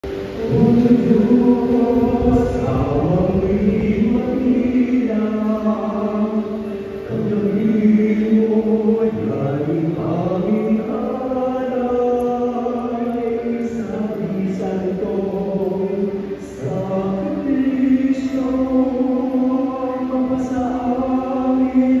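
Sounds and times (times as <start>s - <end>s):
group singing church chant: 0.0s - 22.0s.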